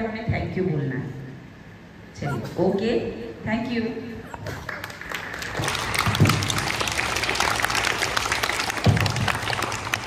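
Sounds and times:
children clapping: 4.4 - 10.0.

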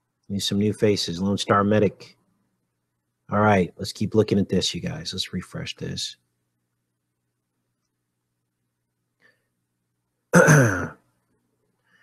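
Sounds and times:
person clearing throat: 10.4 - 11.0.

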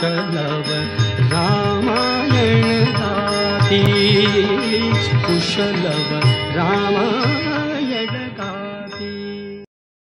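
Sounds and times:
devotional song singing: 0.0 - 9.7
held accompaniment notes: 0.5 - 8.9.

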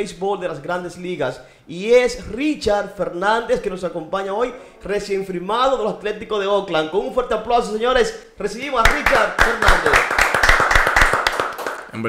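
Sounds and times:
people clapping: 8.6 - 12.0.

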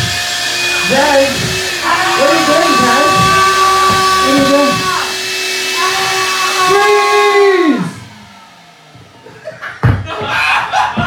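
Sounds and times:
wavering voice-like tones: 0.0 - 9.6
loud buzzing drone: 0.0 - 11.0.

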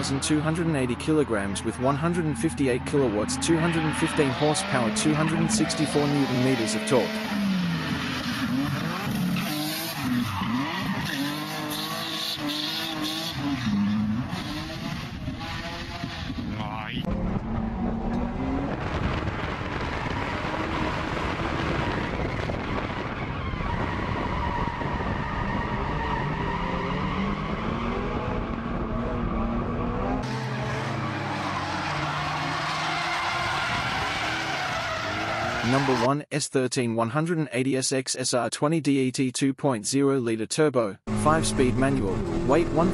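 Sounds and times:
car engines revving: 0.0 - 36.1, 41.1 - 42.9
tyres squealing and skidding: 2.9 - 14.8, 19.8 - 28.2, 28.9 - 36.1.

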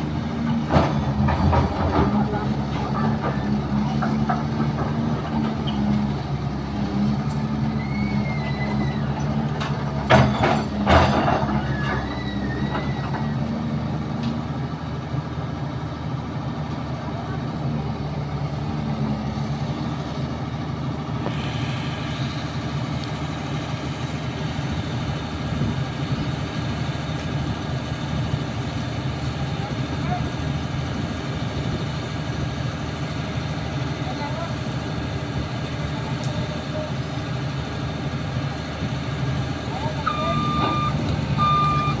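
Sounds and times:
excavator diesel engine running: 0.0 - 42.0
short high beeps: 40.0 - 42.0.

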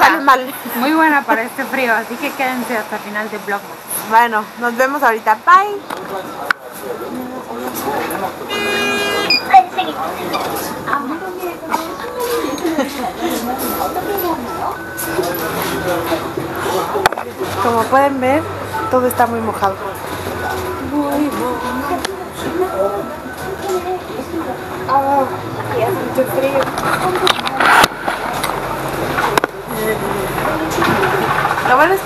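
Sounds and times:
bus engine and road rumble: 0.0 - 32.0
indistinct voices: 0.0 - 32.0
brief high beeps: 8.5 - 9.6.

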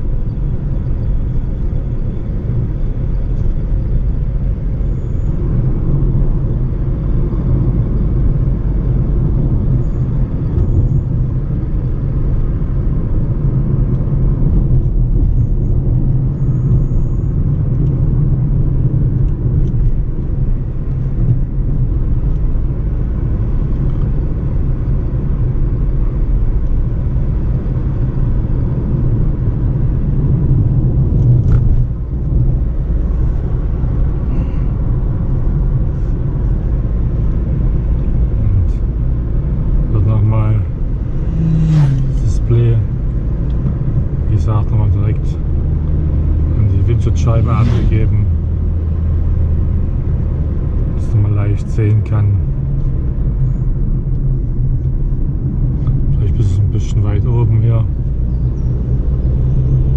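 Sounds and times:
car engine and tyres rumbling: 0.0 - 59.9.

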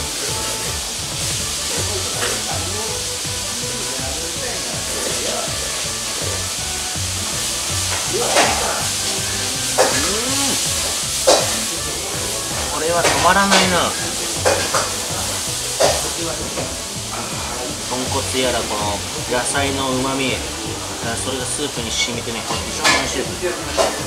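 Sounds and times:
background music with low beat: 0.0 - 24.0.

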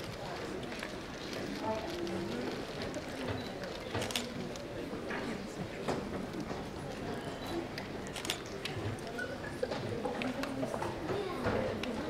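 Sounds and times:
murmur of many voices: 0.0 - 12.0.

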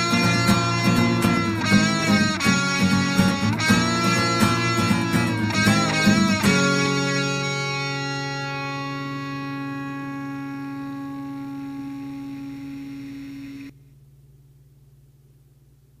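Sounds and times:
electric guitar chord ringing: 0.0 - 13.7
faint low hum: 0.0 - 16.0.

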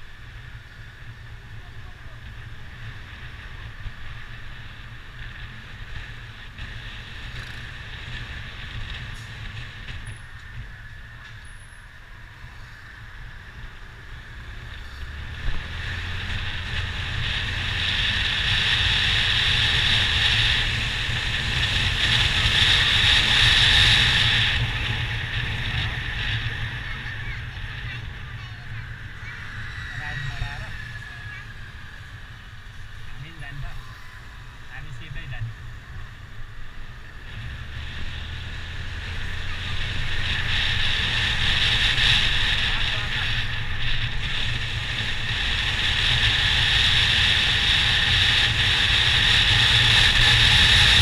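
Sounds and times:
motorcycle engine: 0.0 - 51.0
wind rushing over microphone: 0.0 - 51.0.

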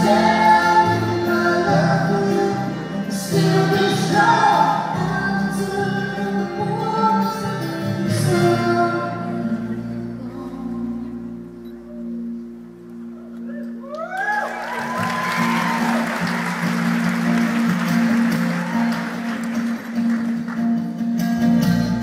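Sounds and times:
rising whoops: 13.4 - 16.4, 18.3 - 19.4
audience applauding and cheering: 13.6 - 21.0.

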